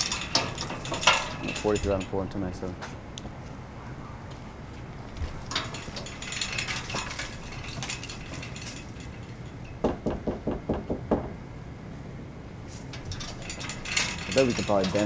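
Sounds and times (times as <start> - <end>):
metal fence rattling and clanking: 0.0 - 2.6, 5.1 - 10.6, 12.7 - 15.0.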